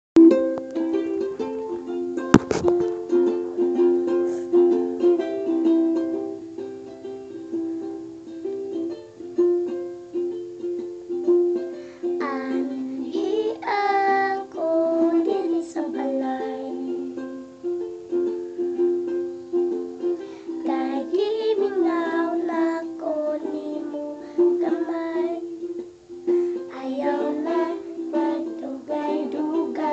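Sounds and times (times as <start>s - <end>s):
ukulele plucked accompaniment: 0.2s - 29.9s
girl singing: 11.8s - 17.4s, 20.0s - 29.9s.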